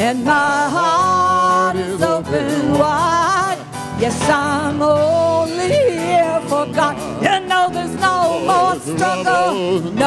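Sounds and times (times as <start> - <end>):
person singing with vibrato: 0.0 - 10.0
piano and band accompaniment: 0.0 - 10.0.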